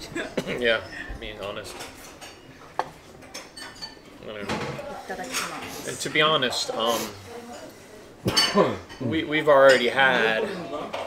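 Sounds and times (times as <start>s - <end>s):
chopsticks and dishes clinking: 1.7s - 11.0s.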